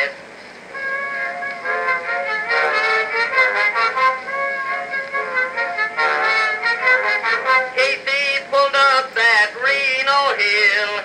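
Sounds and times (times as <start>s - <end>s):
phonograph band music with singing: 0.0s - 11.0s.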